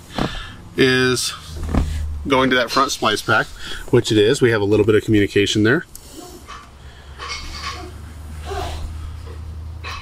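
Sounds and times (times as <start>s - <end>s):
steady low hum: 0.0s - 9.9s.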